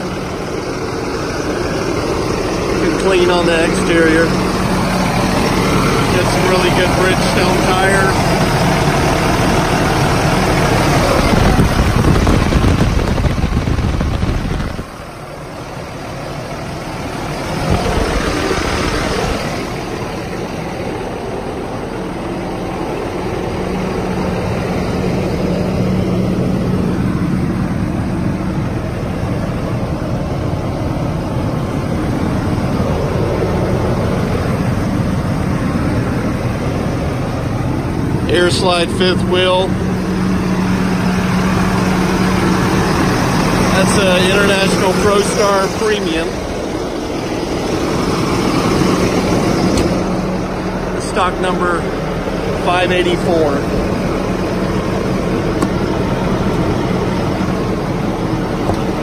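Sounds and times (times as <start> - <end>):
diesel truck engine idling: 0.0 - 59.0.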